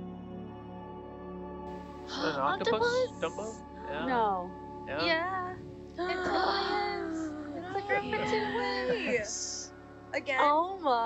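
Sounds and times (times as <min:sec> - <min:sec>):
soft background music: 0:00.0 - 0:11.0
voices exclaiming: 0:02.1 - 0:04.3, 0:04.9 - 0:09.6.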